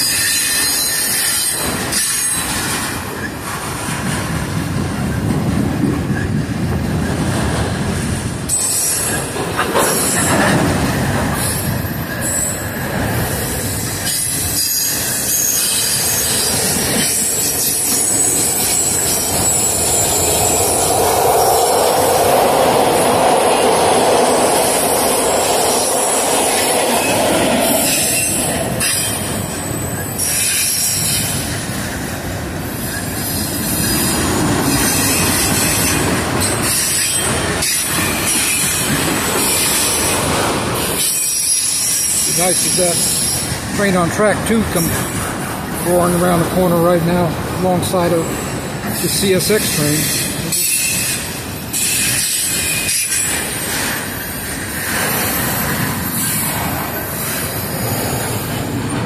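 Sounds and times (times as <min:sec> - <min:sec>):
steel wheels squealing on rails: 0:00.0 - 0:04.4, 0:08.0 - 0:59.0
freight train rumble and clatter: 0:00.0 - 0:59.0.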